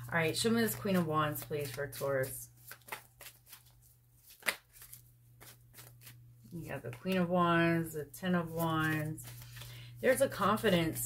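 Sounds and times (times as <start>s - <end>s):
cards being shuffled: 0.1s - 7.3s, 8.4s - 10.7s.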